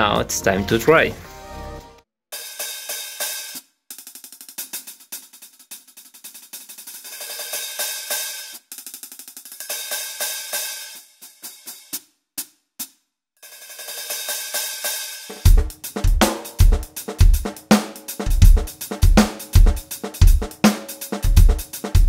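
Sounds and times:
electronic hi-hat strokes: 14.0s - 22.0s.

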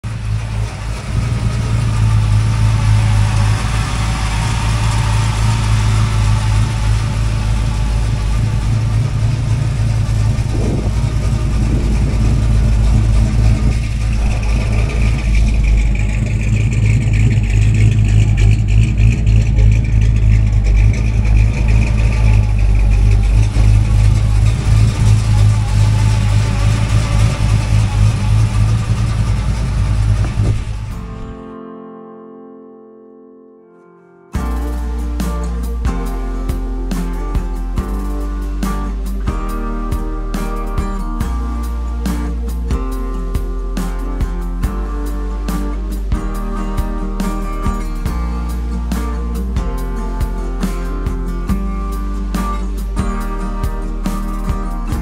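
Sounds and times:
car engine deep exhaust note: 0.0s - 31.4s, 34.4s - 55.0s.

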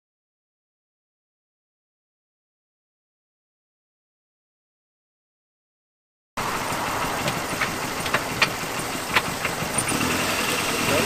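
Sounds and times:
car engine idling: 6.4s - 11.0s.

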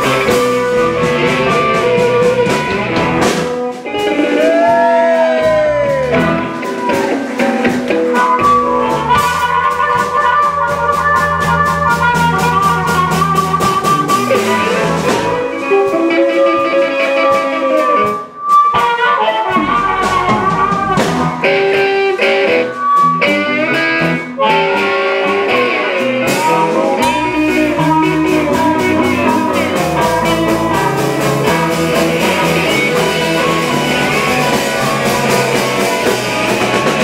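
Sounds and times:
amplified harmonica: 0.0s - 37.0s
drum kit: 0.0s - 37.0s
resonator guitar: 0.0s - 37.0s.

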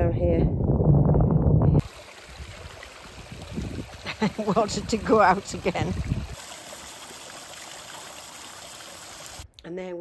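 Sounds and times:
stream trickling: 1.8s - 9.5s.

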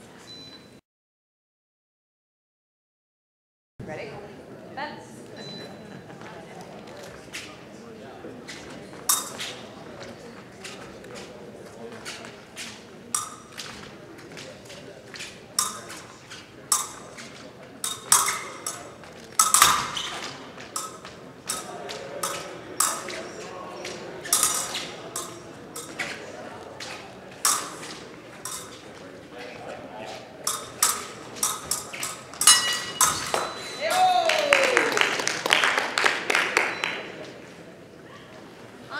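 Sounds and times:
murmur of voices: 3.8s - 38.9s
fencing blades clinking: 8.5s - 9.7s, 12.1s - 29.1s, 30.4s - 34.3s.

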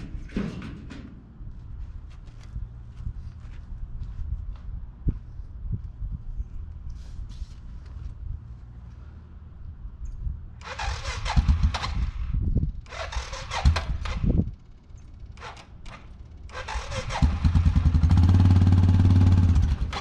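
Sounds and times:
starter motor cranking: 10.6s - 18.3s
engine running: 10.6s - 20.0s.

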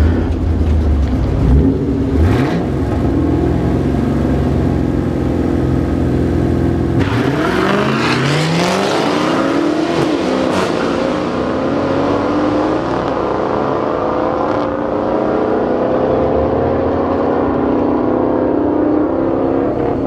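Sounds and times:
car engine droning: 0.0s - 20.0s.

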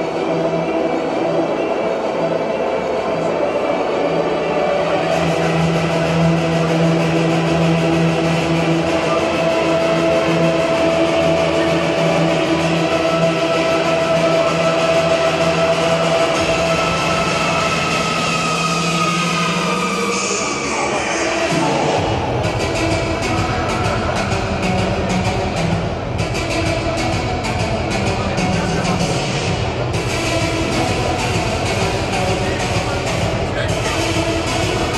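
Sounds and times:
ice hockey arena ambience: 0.0s - 34.9s.

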